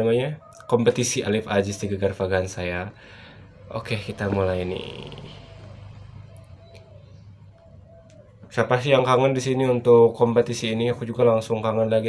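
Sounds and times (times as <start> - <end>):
dove cooing: 0.0 - 11.1.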